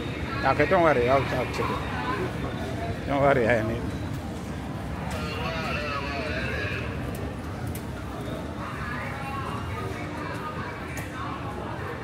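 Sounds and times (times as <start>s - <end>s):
indistinct voices of passers-by: 0.0s - 12.0s.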